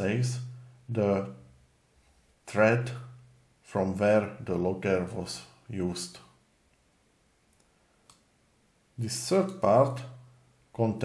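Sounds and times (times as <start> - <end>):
person speaking: 0.0 - 1.6, 2.4 - 6.4, 9.0 - 11.0.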